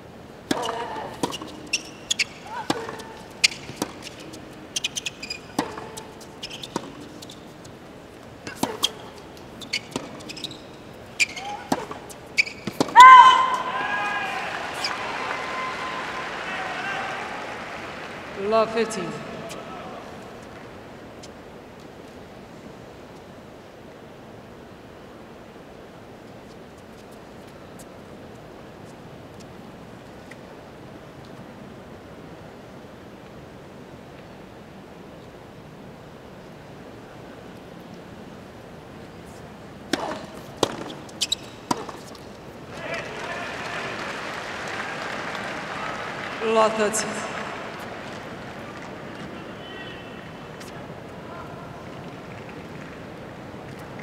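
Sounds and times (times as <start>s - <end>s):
stadium crowd ambience: 0.0s - 24.3s, 33.9s - 54.0s
tennis ball strikes: 0.5s - 7.2s, 8.4s - 10.6s, 11.2s - 13.8s, 39.9s - 42.2s
crowd applauding: 14.0s - 19.9s, 42.8s - 49.6s.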